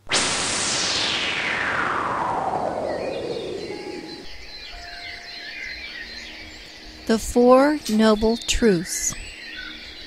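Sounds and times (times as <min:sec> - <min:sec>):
descending whoosh: 0:00.0 - 0:04.8
small birds chirping: 0:02.8 - 0:10.0.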